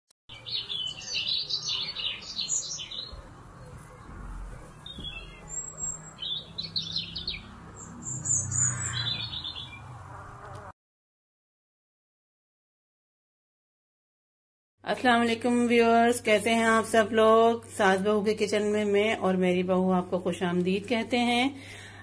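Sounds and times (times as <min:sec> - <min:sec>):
birds chirping: 0:00.3 - 0:10.7.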